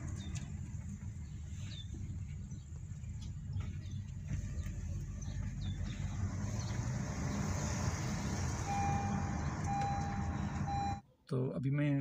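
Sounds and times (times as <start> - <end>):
low engine and road rumble: 0.0 - 11.0
steady electronic beep: 8.7 - 11.0.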